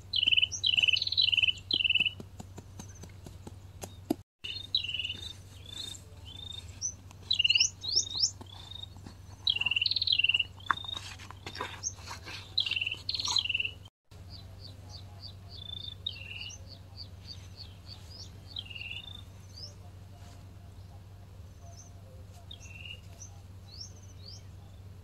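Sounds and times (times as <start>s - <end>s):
small birds chirping: 0.0s - 25.0s.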